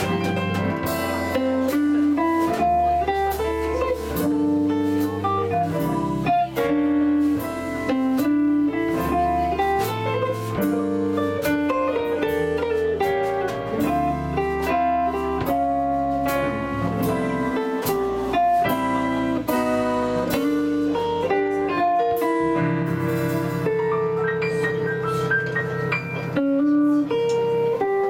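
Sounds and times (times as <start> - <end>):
digital stage piano: 0.0 - 28.0
drum kit with light cymbals: 0.0 - 28.0
electric guitar: 0.0 - 28.0
upright bass walking: 0.0 - 28.0.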